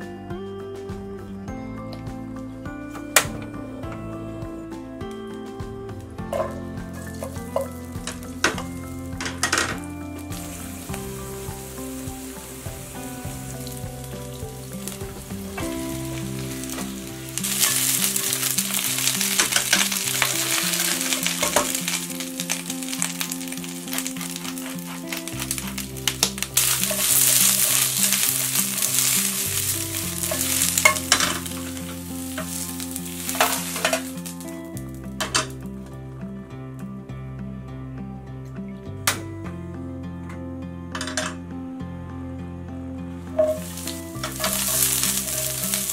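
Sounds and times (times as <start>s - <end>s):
food sizzling in oil: 6.4s - 34.6s, 43.4s - 45.9s.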